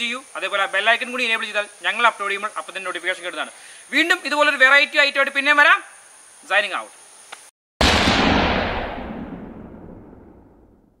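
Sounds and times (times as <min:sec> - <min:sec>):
loud logo hit with long tail: 0:07.8 - 0:11.0.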